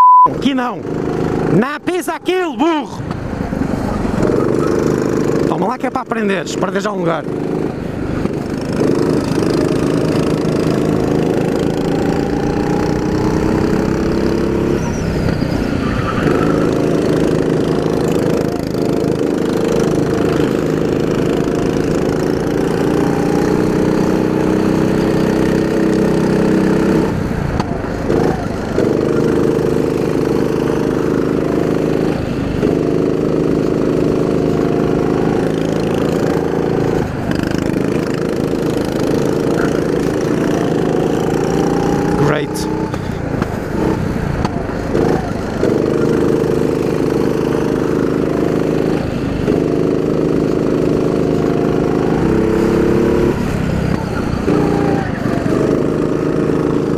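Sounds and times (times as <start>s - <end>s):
go-kart engine racing: 0.2s - 56.9s.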